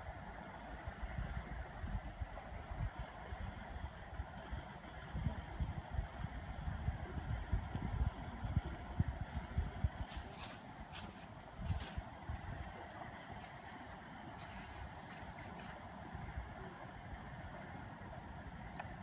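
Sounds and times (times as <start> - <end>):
wind buffeting microphone: 0.9 - 16.8.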